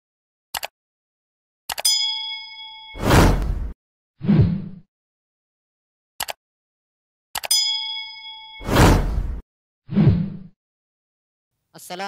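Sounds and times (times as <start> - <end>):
notification bell ding: 1.8 - 3.0, 7.5 - 8.7.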